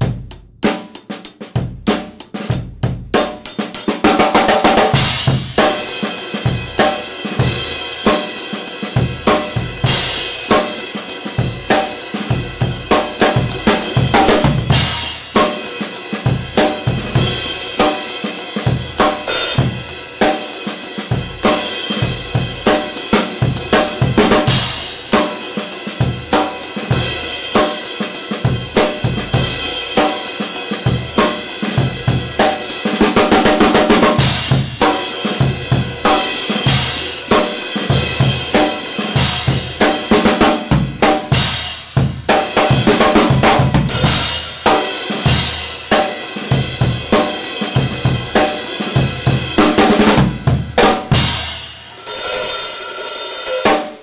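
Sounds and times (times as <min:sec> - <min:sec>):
drum kit groove: 0:00.0 - 0:54.0.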